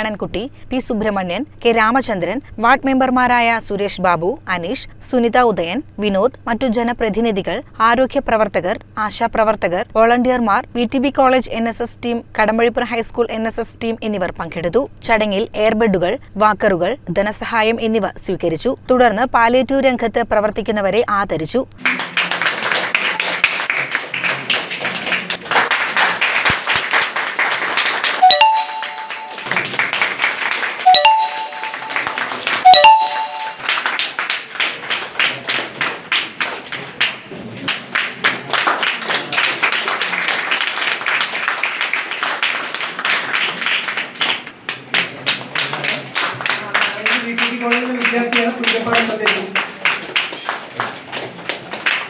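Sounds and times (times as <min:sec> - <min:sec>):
crowd applause: 0:21.8 - 0:52.0
sharp click with chime tones: 0:28.2 - 0:29.5, 0:30.9 - 0:33.6.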